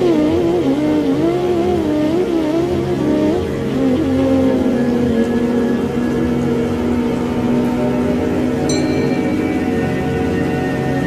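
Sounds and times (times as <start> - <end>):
steady background drone: 0.0 - 11.0.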